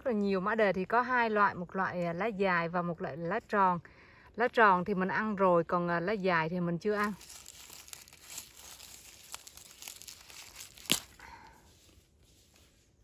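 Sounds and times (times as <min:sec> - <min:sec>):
dry leaves rustling: 0:06.9 - 0:12.0
leaf snapping off: 0:07.0 - 0:11.3.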